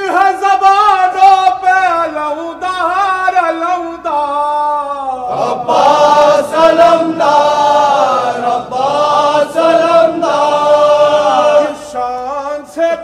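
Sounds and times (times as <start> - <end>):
men chanting devotional song: 0.0 - 13.0
choir-like vocal backing: 5.2 - 13.0.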